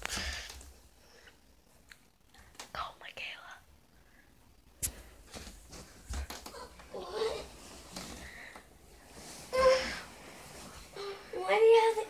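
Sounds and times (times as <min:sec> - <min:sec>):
person whispering: 0:02.7 - 0:03.7.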